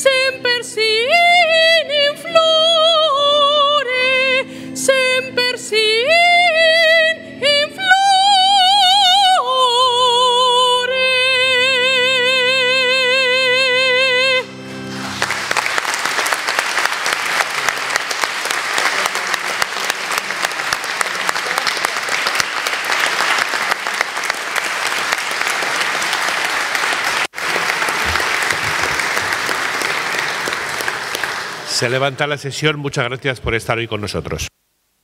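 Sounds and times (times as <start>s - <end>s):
large audience applauding: 15.0s - 32.3s.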